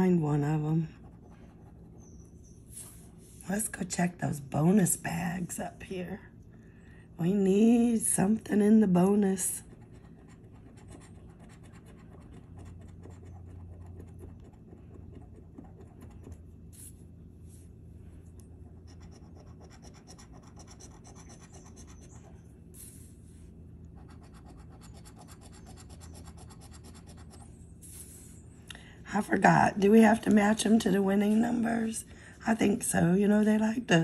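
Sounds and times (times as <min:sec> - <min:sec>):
coin scratching lottery ticket: 0:18.9 - 0:22.2.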